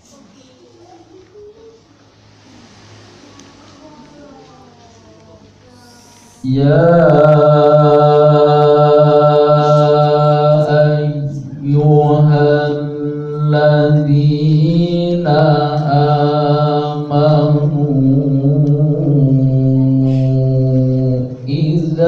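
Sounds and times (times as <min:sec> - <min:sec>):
man reciting melodically: 0:06.4 - 0:22.0.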